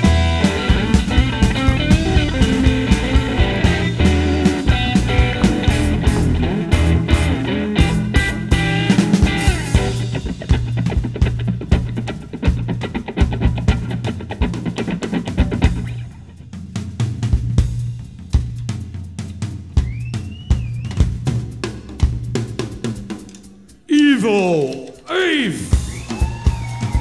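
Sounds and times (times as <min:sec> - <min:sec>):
rock drum kit solo: 0:00.0 - 0:14.7.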